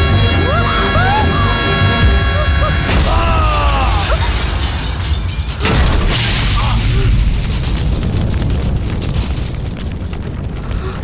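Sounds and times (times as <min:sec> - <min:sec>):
heavy low rumble: 0:01.6 - 0:11.0
crashing and shattering: 0:02.9 - 0:11.0
explosion boom: 0:02.9 - 0:11.0.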